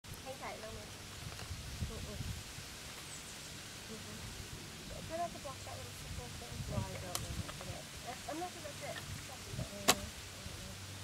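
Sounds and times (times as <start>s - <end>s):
outdoor background noise: 0.0s - 11.0s
faint voices talking: 3.3s - 11.0s.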